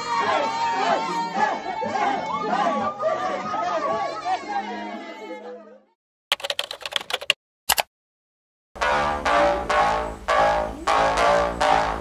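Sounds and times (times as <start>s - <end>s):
people chattering and calling out: 0.0s - 6.0s, 10.4s - 11.6s.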